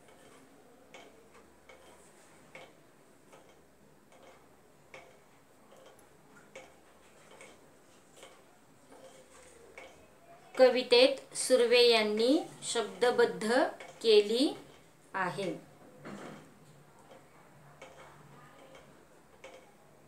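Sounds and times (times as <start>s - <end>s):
faint regular ticking: 0.0s - 20.0s.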